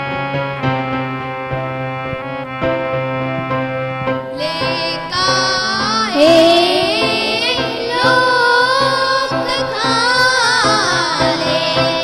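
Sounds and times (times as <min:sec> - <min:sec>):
harmonium drone: 0:00.0 - 0:12.0
girl and boy singing: 0:04.4 - 0:12.0.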